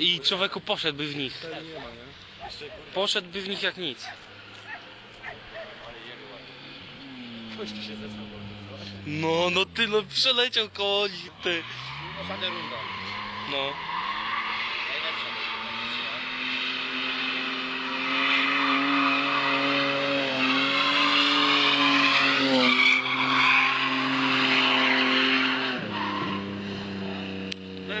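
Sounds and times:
car engine at high revs: 0:00.0 - 0:28.0
tyres squealing: 0:07.0 - 0:16.5, 0:17.8 - 0:26.5.

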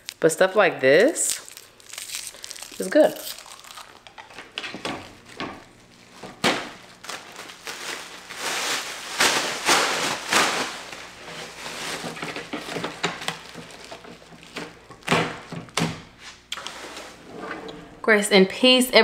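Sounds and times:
rustling and crinkling: 0:01.2 - 0:17.2.

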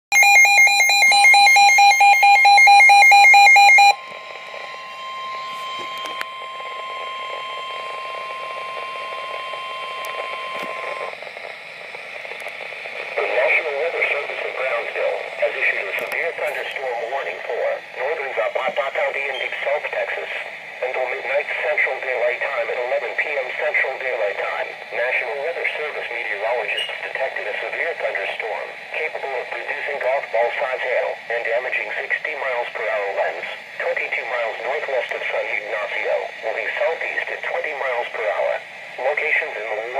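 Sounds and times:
steady warning alarm tone: 0:00.1 - 0:39.9.

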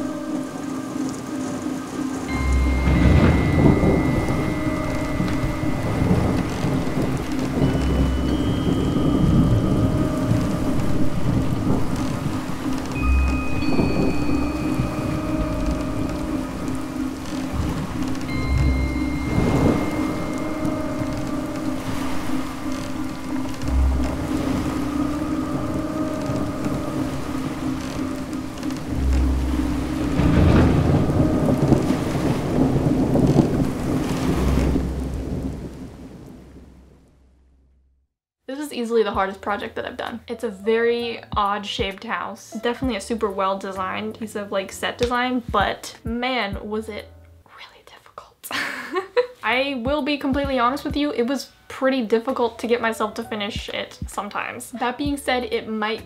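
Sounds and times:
heavy rain: 0:00.0 - 0:37.3
thunder rumbling: 0:00.0 - 0:37.6.

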